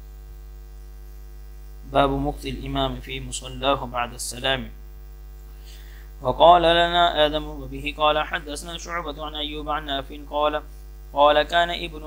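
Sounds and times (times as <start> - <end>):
low electrical hum: 0.0 - 12.0
man talking: 1.9 - 4.8, 6.2 - 12.0.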